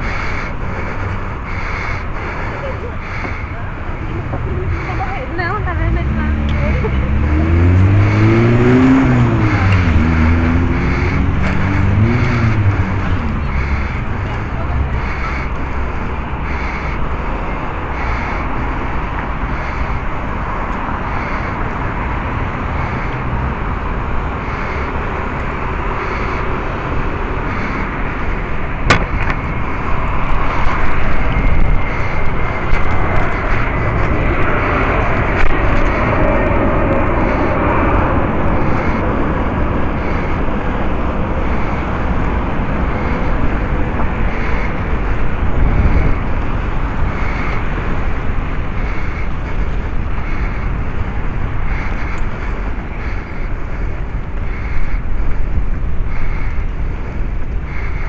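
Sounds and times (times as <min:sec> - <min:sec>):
cars going by: 0:00.0 - 0:58.0
wind and road noise: 0:00.0 - 0:58.0.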